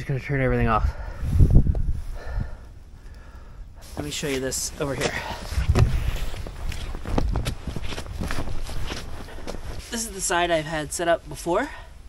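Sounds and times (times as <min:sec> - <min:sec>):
footsteps of person walking: 0:03.9 - 0:10.0.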